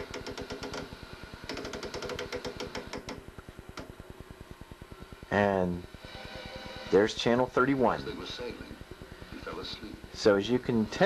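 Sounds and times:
steady low buzz: 0.0s - 1.8s, 3.0s - 11.0s
faint static hiss: 0.0s - 11.0s.

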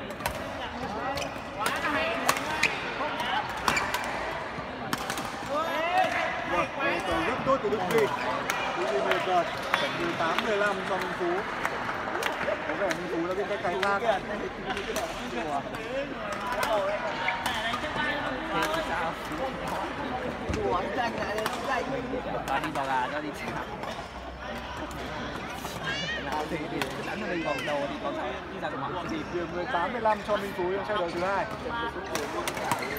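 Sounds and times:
voices chattering: 0.0s - 32.9s.

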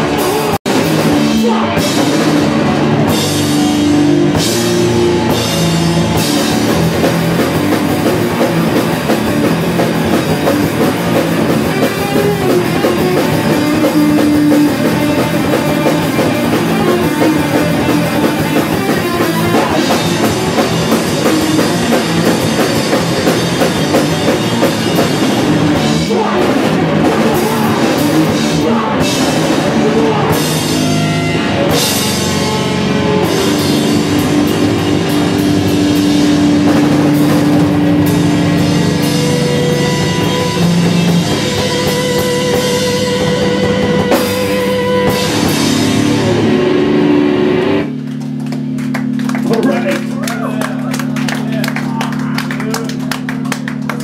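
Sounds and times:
drum kit with crashing cymbals: 0.0s - 47.7s
distorted electric guitar: 0.0s - 51.1s
bass guitar: 0.0s - 54.0s.

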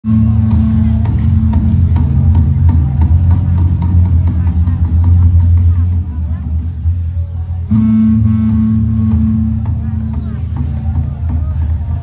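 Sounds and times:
live band music with heavy bass: 0.0s - 12.0s
steady drum beat: 0.0s - 12.0s.

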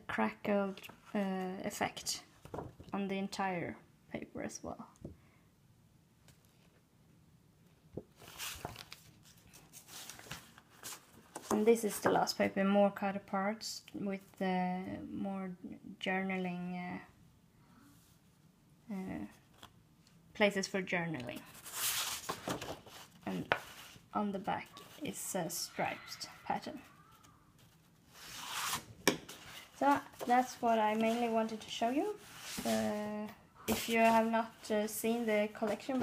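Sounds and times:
paper rustling: 8.2s - 11.6s, 21.4s - 24.0s, 27.0s - 33.0s, 33.7s - 36.0s.

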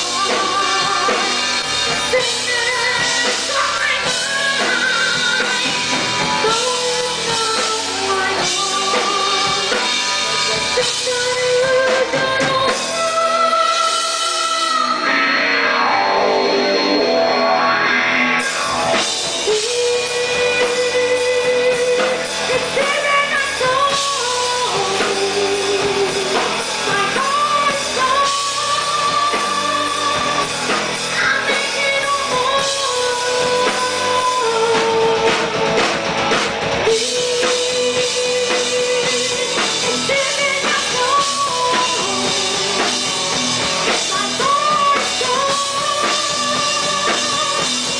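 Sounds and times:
rock band playing: 0.0s - 47.9s.

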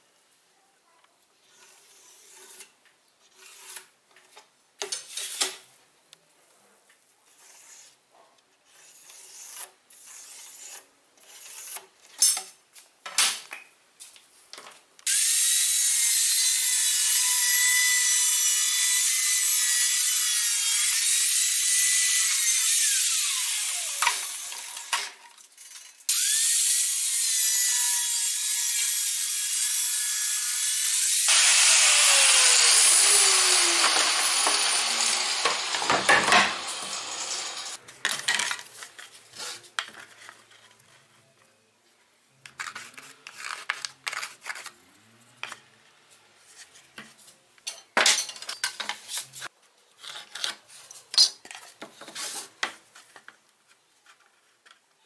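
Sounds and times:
angle grinder cutting plastic pipe: 1.4s - 4.0s, 15.1s - 37.8s.

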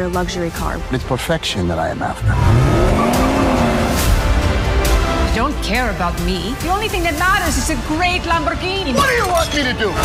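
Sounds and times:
trailer music: 0.0s - 10.0s
car engine revving high: 2.2s - 4.5s.

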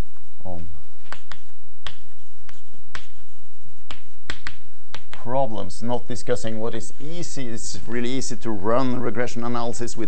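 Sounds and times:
chalk tapping on chalkboard: 1.0s - 5.7s.

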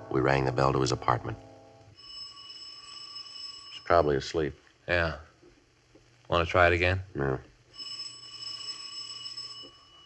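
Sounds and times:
doorbell ringing: 1.5s - 4.3s, 7.7s - 10.0s.

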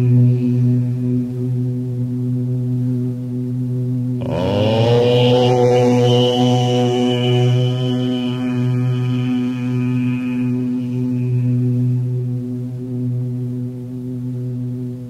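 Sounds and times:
chanted mantra music: 0.0s - 15.0s
steady low drone: 0.0s - 15.0s.

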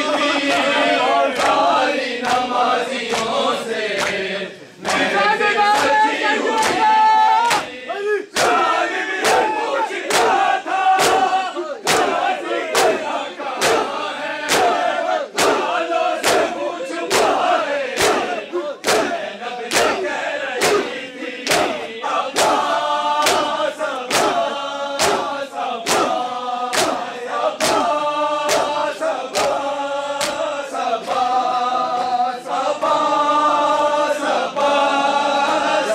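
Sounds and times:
crowd of men chanting: 0.0s - 35.9s
hands slapping chests: 1.4s - 3.4s, 4.0s - 4.2s, 5.7s - 7.8s, 8.4s - 21.8s, 22.4s - 32.2s.

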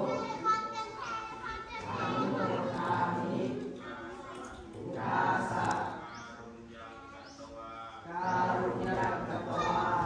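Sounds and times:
boys chanting in unison: 0.0s - 10.0s.

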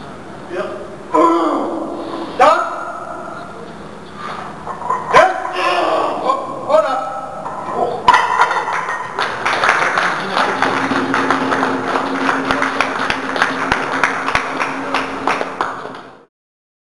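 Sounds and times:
crowd clapping and cheering: 8.2s - 16.3s.

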